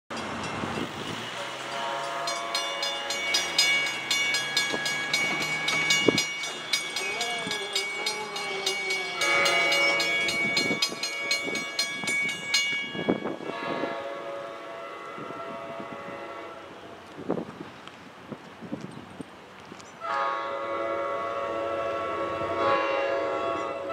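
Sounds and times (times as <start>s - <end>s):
locomotive horn: 1.2s - 3.5s, 7.0s - 11.6s, 13.2s - 16.9s, 20.0s - 23.9s
rapid clanging bell: 1.7s - 13.4s.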